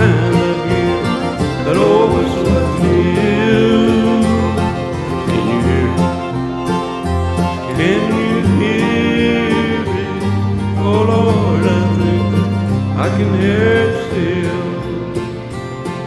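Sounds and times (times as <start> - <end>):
bluegrass string music: 0.0 - 16.0.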